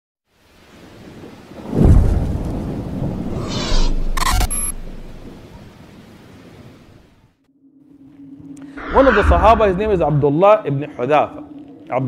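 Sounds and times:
rumbling swell: 0:07.6 - 0:11.8.

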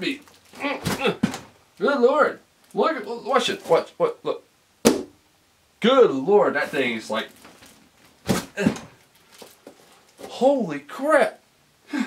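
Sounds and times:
foam scraping: 0:06.4 - 0:09.0.

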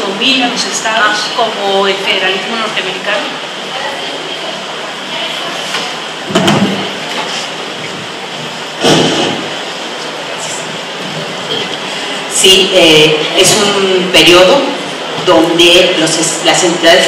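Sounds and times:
background noise: 0:00.0 - 0:17.0
microphone handling bumps: 0:06.3 - 0:09.6.

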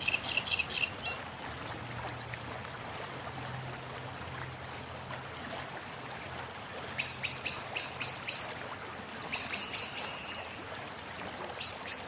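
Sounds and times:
bird chirping: 0:09.3 - 0:10.4.

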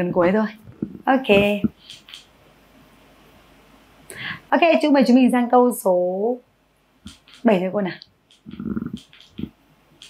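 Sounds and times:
clothing rubbing on microphone: 0:08.4 - 0:09.6.

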